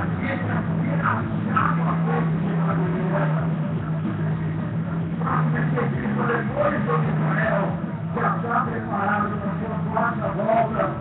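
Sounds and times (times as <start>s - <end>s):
faint voices: 0.0s - 11.0s
low mechanical hum: 0.0s - 11.0s.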